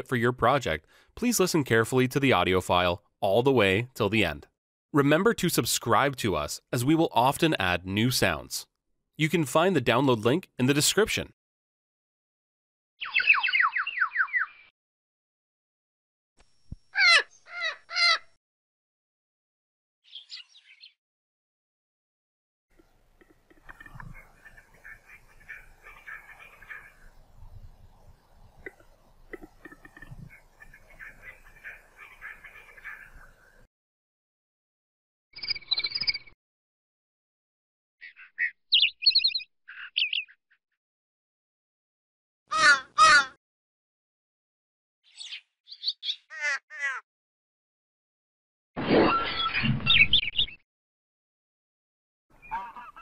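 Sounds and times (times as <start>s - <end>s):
bird calling: 13.0s - 14.7s, 16.9s - 18.4s, 22.8s - 33.7s, 38.0s - 40.4s, 42.5s - 43.4s, 45.1s - 47.0s, 52.3s - 53.0s.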